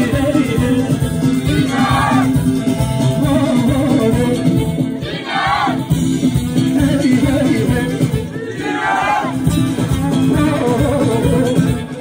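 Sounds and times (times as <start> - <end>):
amplified live band music: 0.0 - 12.0.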